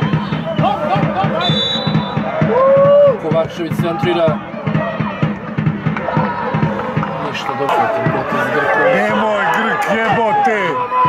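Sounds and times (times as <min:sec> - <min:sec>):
steady drumbeat: 0:00.0 - 0:11.0
high whistle tone: 0:01.4 - 0:02.3
voices: 0:03.2 - 0:11.0.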